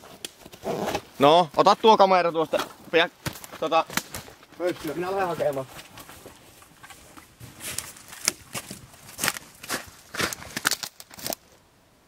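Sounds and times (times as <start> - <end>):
footsteps crunching through snow: 0.0 - 11.4.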